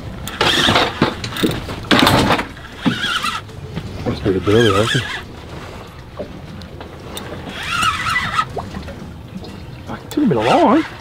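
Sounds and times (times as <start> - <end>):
water lapping: 0.0 - 11.0.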